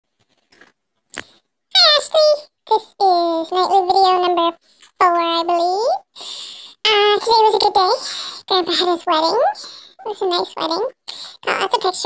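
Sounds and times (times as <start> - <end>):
high pitch-shifted woman's voice: 1.7 - 12.0.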